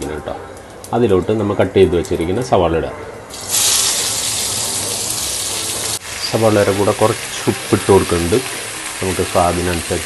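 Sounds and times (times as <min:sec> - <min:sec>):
onions sizzling in hot oil: 0:03.3 - 0:10.0.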